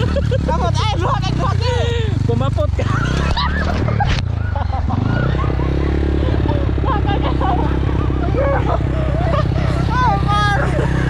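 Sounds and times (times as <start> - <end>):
motorcycle engine running: 0.0 - 11.0
voices calling out: 0.0 - 11.0.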